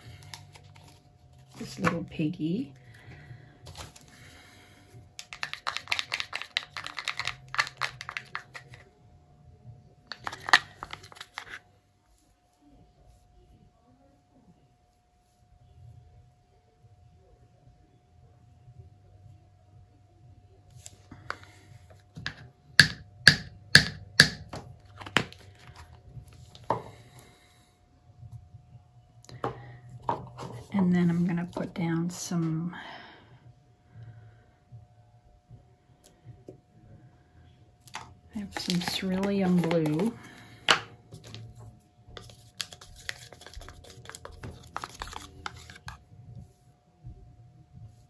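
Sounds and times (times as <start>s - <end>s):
plastic spoon scraping cup: 5.2s - 8.7s, 10.1s - 11.6s, 38.4s - 41.4s, 42.2s - 46.0s.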